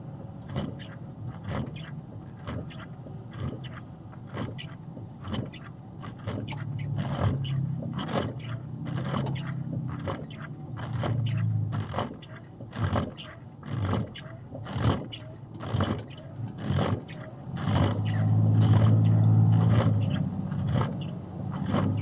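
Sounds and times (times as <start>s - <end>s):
truck engine running: 0.0s - 22.0s
windshield wipers scraping: 0.2s - 22.0s.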